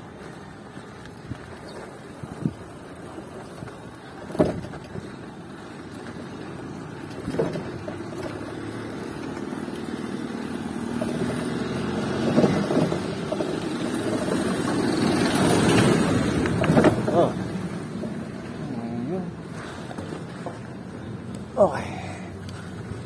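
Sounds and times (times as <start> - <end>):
vehicle engine approaching: 0.0 - 23.0
sharp knocks from road: 4.2 - 5.2, 7.0 - 10.2, 10.8 - 17.6.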